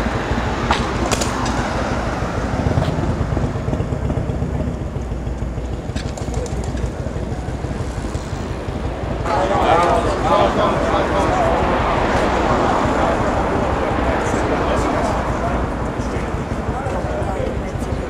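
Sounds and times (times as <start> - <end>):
engine low rumble: 0.0 - 18.0
voices: 0.0 - 18.0.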